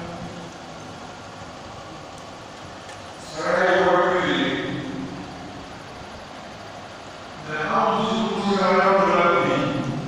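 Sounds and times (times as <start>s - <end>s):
hall room noise: 0.0s - 10.0s.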